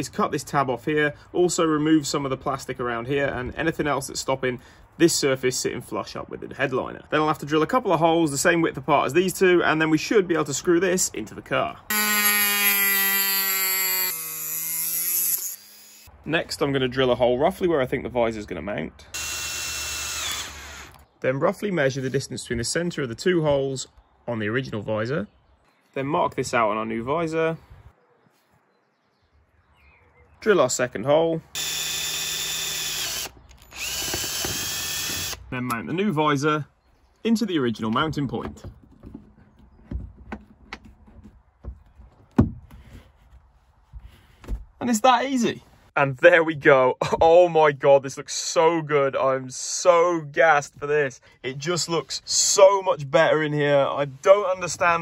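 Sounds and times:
rotary tool whining: 0:11.9 - 0:16.1, 0:19.2 - 0:21.0, 0:31.6 - 0:35.4.

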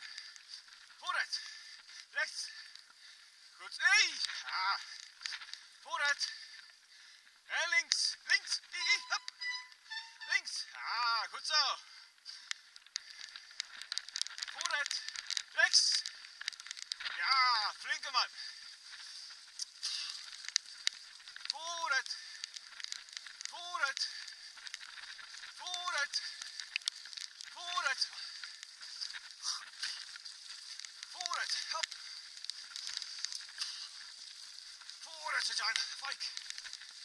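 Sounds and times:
bicycle tyres rolling on dirt: 0:00.0 - 0:37.0.

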